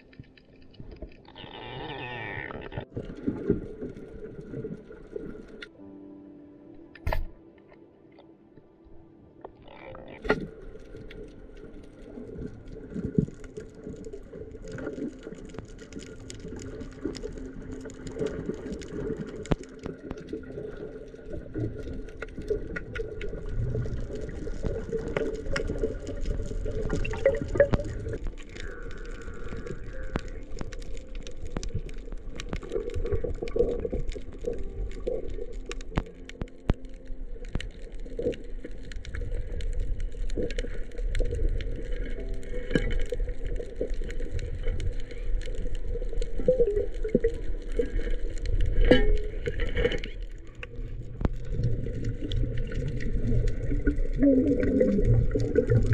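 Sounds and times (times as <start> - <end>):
sharp clicks and crackles: 0.0 - 5.8, 9.4 - 55.9
muffled underwater rumble: 0.0 - 6.0, 8.2 - 55.9.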